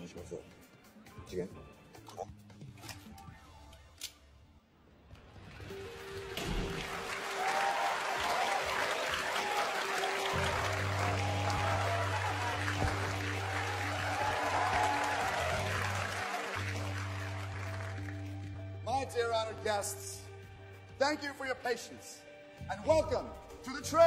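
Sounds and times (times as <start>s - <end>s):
music with held tones: 5.3s - 21.0s
audience applauding: 5.5s - 18.6s.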